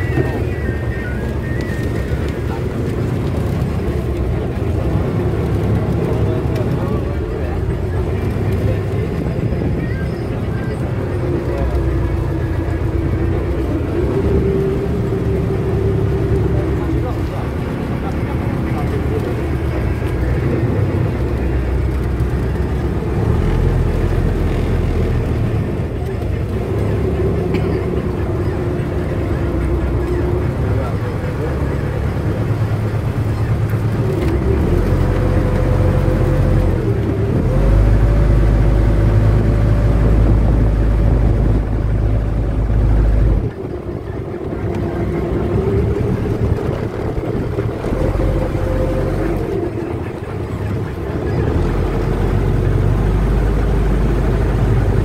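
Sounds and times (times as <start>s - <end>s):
boat engine running: 0.0s - 55.0s.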